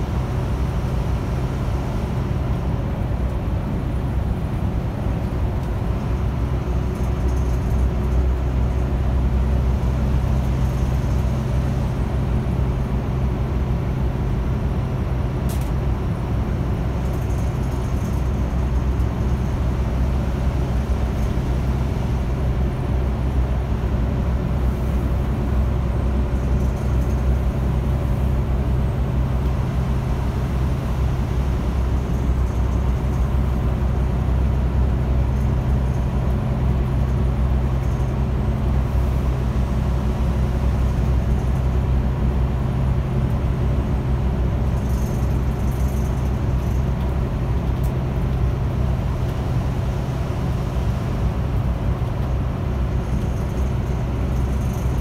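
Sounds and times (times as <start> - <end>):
bus engine droning: 0.0 - 55.0
road noise: 0.0 - 55.0.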